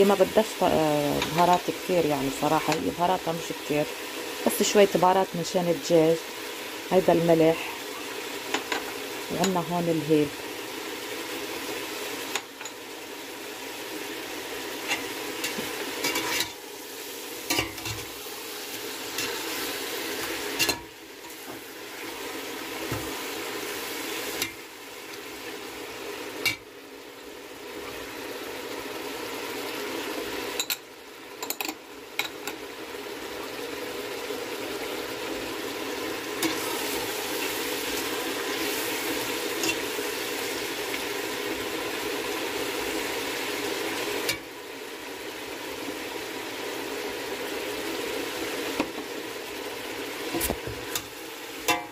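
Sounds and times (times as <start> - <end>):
chicken sizzling in oil: 0.0 - 51.9
metal spoon scraping a pot: 16.0 - 16.5.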